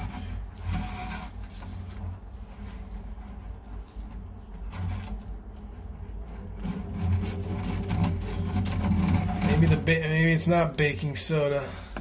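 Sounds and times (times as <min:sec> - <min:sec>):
cable rubbing against gloves: 0:00.0 - 0:11.7
drain snake motor humming: 0:00.0 - 0:11.9.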